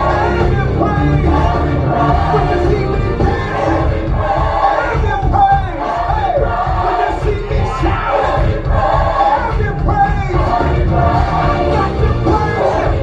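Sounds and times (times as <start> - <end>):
congregation singing and calling out: 0.0 - 13.0
drums and bass beat: 0.0 - 13.0
worship band playing: 0.0 - 13.0.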